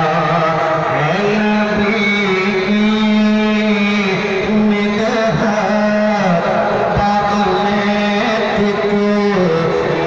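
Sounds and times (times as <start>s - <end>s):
man singing long held notes: 0.0s - 10.0s.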